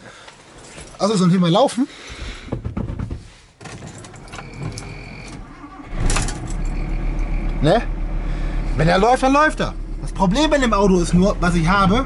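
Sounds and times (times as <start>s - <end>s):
diesel engine starting and idling: 4.0s - 12.0s.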